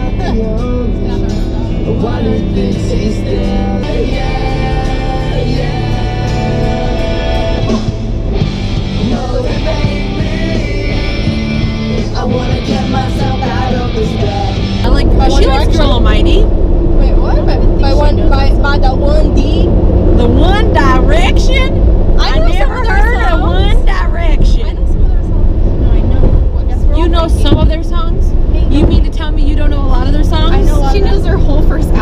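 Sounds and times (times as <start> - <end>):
voices talking: 0.0 - 7.9, 8.9 - 32.0
car engine and road drone: 0.0 - 32.0.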